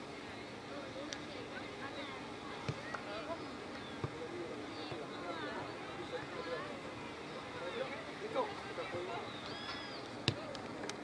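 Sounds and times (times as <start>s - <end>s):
distant shouts and calls: 1.4s - 10.5s.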